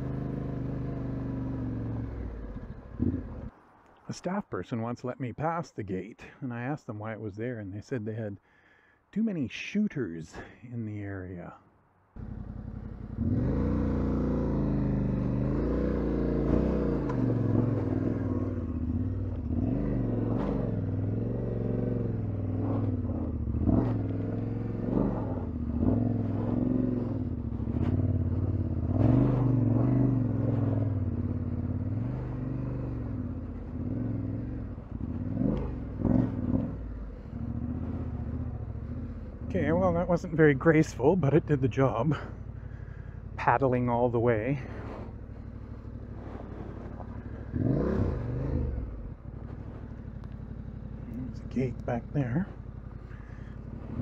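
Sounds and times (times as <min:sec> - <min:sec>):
motorcycle engine revving: 0:00.0 - 0:03.6, 0:12.2 - 0:54.0.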